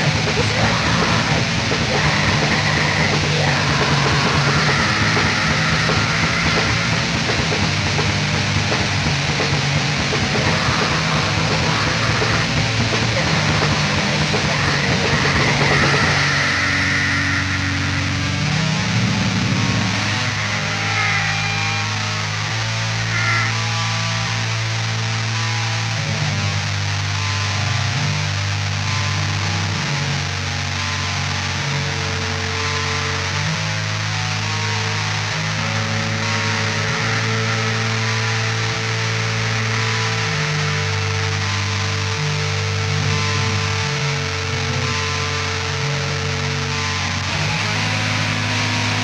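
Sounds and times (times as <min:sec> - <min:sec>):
dense wash of noise: 0:00.0 - 0:21.1
bass guitar: 0:00.0 - 0:49.0
black metal band playing: 0:00.0 - 0:49.0
distorted electric guitars: 0:00.0 - 0:49.0.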